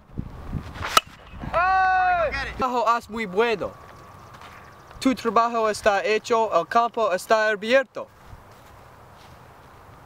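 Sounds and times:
long drawn-out shout: 1.5s - 2.4s.

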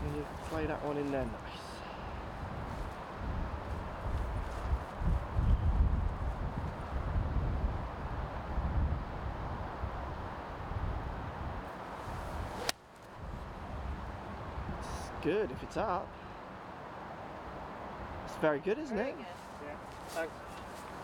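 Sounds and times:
golf club striking ball: 12.5s - 12.8s.

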